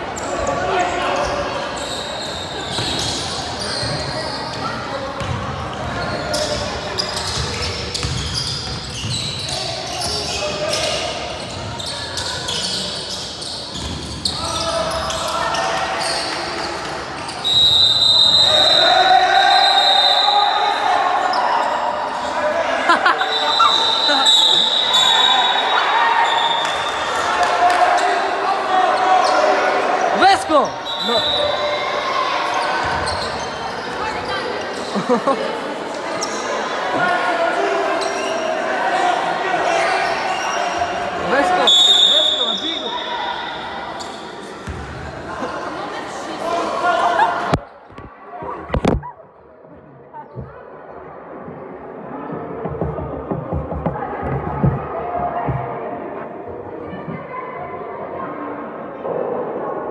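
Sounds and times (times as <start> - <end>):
voices in a gym: 0.0 - 59.9
basketball bouncing: 5.2 - 5.8, 7.3 - 8.8
referee's whistle blasts: 17.4 - 20.6, 23.2 - 27.0, 30.8 - 31.6, 41.6 - 43.8.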